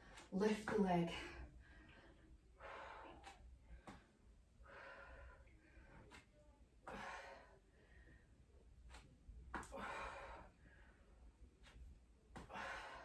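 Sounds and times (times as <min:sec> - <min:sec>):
woman breathing hard: 0:01.3 - 0:04.0, 0:04.6 - 0:06.2, 0:06.8 - 0:08.4, 0:09.6 - 0:11.2, 0:12.4 - 0:13.0.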